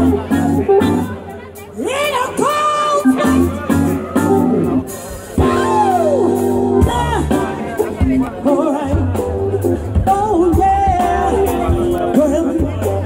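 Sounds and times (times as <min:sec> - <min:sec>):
soul band playing: 0:00.0 - 0:13.0.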